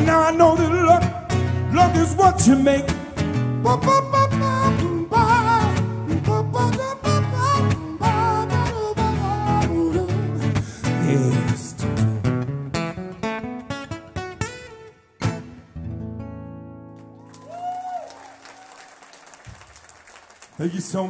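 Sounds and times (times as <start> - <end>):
acoustic guitar strumming: 0.0 - 17.2.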